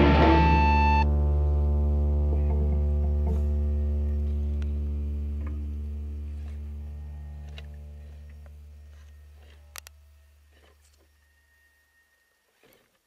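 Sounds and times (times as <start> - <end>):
held guitar chord ringing: 0.0 - 6.2.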